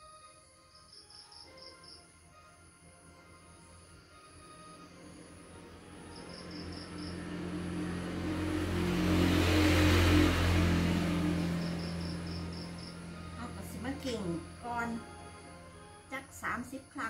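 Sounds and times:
vehicle passing by: 3.5s - 16.1s.

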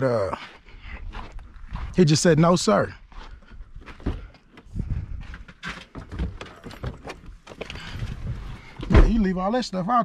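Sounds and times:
footsteps on dirt: 0.2s - 6.1s.

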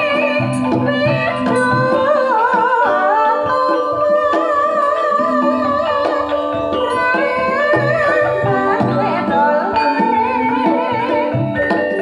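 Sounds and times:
gamelan playing: 0.0s - 12.0s
person singing wavering melody: 0.0s - 12.0s.

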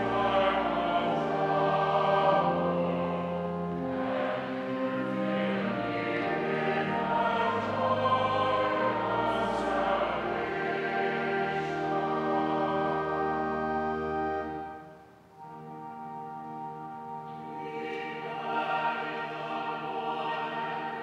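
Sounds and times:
choir singing sustained chords: 0.0s - 21.0s.

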